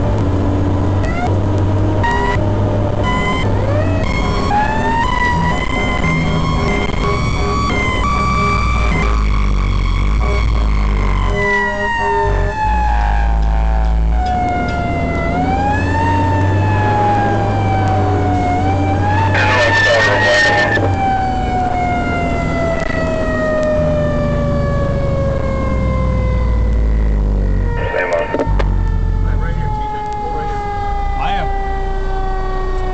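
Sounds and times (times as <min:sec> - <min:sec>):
fire engine siren wailing: 0:00.0 - 0:32.9
truck low rumble: 0:00.0 - 0:32.9.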